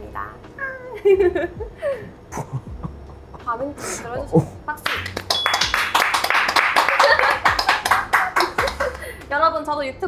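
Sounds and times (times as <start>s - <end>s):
people clapping: 4.8s - 9.2s.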